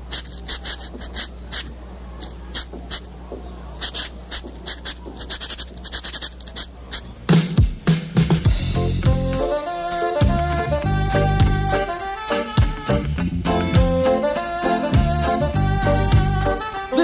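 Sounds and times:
reggae band with loud bass: 0.0s - 17.0s.

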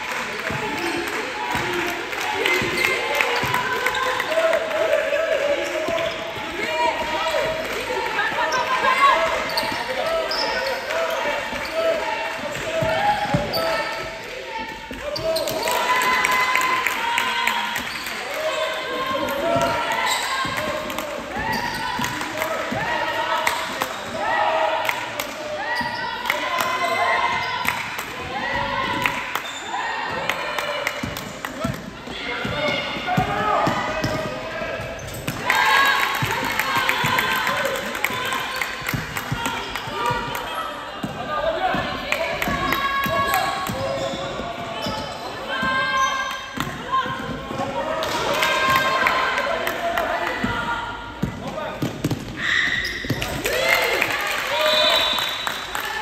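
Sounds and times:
voices calling and talking: 0.0s - 56.0s.

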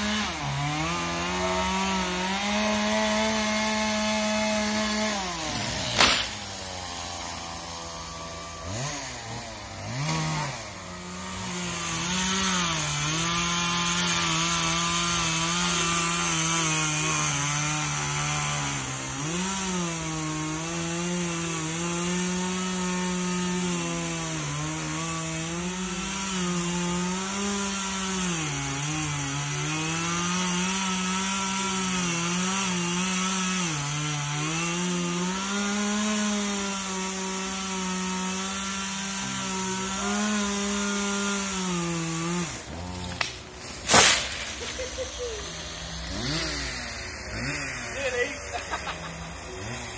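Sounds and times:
chainsaw sawing through wood: 0.0s - 49.9s
chainsaw engine blipping: 42.0s - 49.9s.

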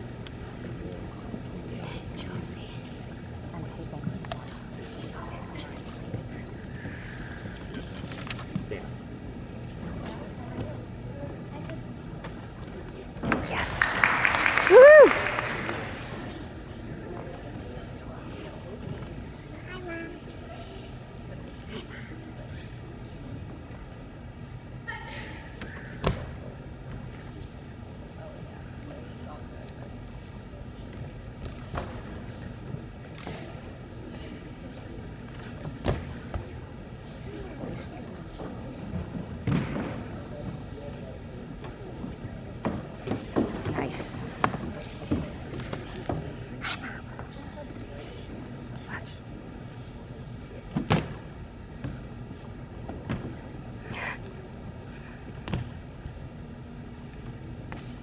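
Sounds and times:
background chatter: 0.0s - 58.0s
crowd cheering: 13.5s - 16.2s
person shouting woo: 14.7s - 15.2s.

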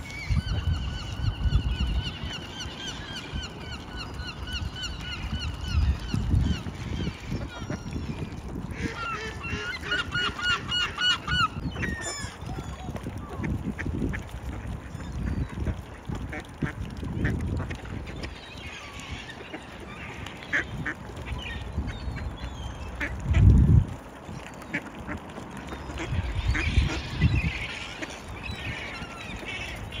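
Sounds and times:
mallard ducks quacking: 8.7s - 12.4s, 13.3s - 22.3s, 23.0s - 23.5s, 24.7s - 30.0s.

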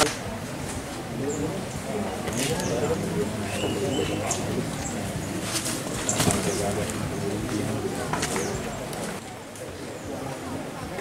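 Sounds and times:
dove cooing: 1.2s - 9.2s.

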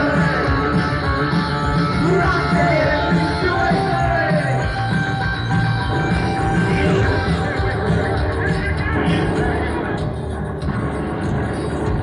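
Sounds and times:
synth-rock band playing: 0.0s - 12.0s.

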